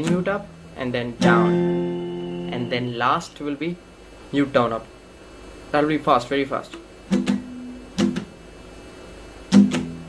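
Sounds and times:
acoustic guitar strums: 0:00.0 - 0:03.0, 0:06.7 - 0:08.4, 0:09.5 - 0:10.0.

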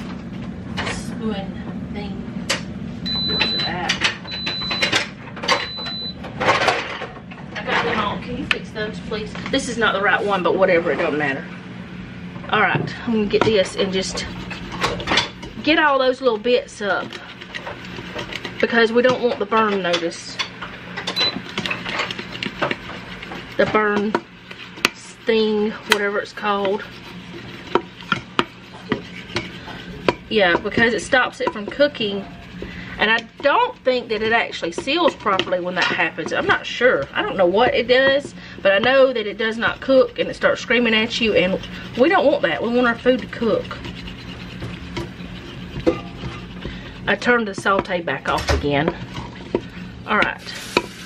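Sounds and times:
low steady hum: 0:00.0 - 0:51.0
high electronic beeps: 0:03.0 - 0:04.9
wooden spoon scraping metal pot: 0:12.5 - 0:51.0.

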